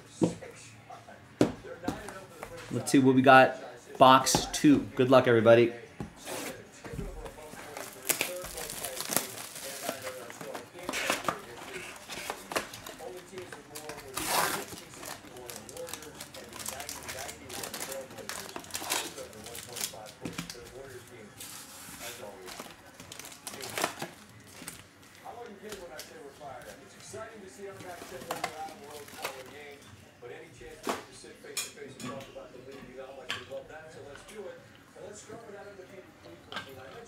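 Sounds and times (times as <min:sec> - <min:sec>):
foil packs crinkling: 0:07.2 - 0:29.7.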